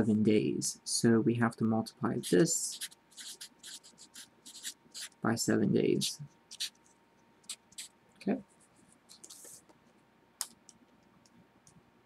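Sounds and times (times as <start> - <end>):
marker scratching on paper: 2.2 - 5.2, 6.5 - 7.9, 8.5 - 9.7.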